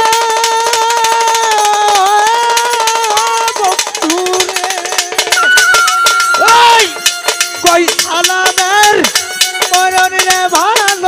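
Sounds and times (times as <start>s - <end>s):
fast clicking percussion: 0.0s - 11.0s
violin playing: 5.2s - 10.2s.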